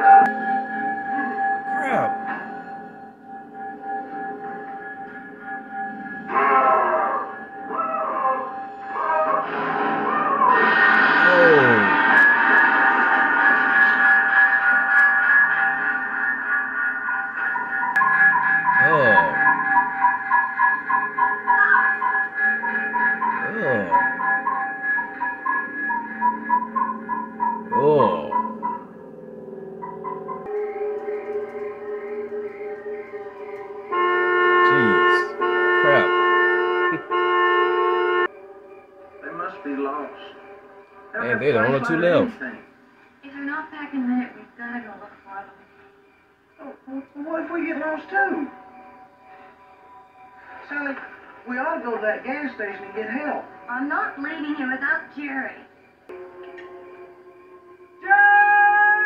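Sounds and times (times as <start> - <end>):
droning horror film score: 0.0 - 59.0.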